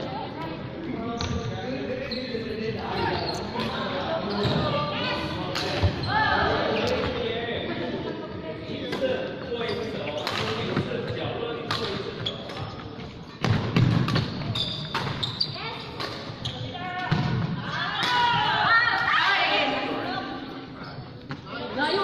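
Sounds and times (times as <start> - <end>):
shoes squeaking on wooden floor: 1.2 - 5.0, 12.2 - 17.0.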